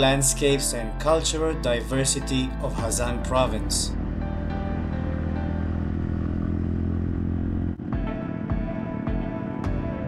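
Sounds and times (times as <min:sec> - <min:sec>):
music: 0:00.0 - 0:06.8, 0:07.6 - 0:10.0
motorcycle engine running: 0:01.6 - 0:10.0.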